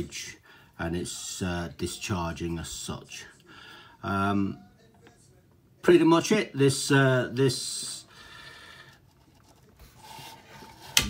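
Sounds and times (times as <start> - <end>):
hand rubbing and handling noise: 8.9 - 11.0.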